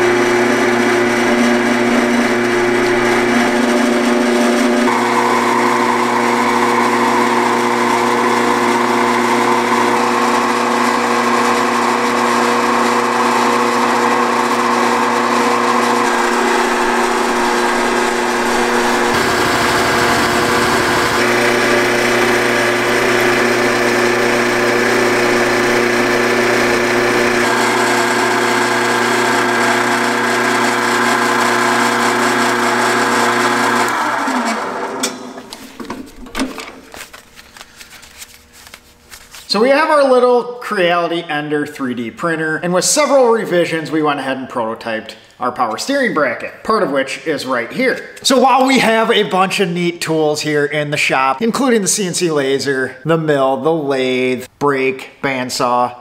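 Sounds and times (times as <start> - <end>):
metal lathe motor whine and hum: 0.0 - 35.4.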